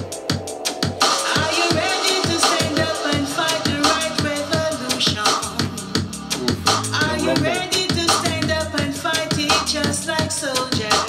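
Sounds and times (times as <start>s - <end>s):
dub reggae music: 0.0s - 11.0s
heavy rumbling bass: 5.4s - 9.0s
gliding vocal line: 6.2s - 8.6s.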